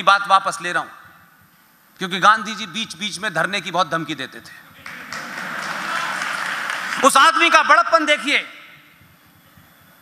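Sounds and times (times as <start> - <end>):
audience applauding: 4.8 - 7.3.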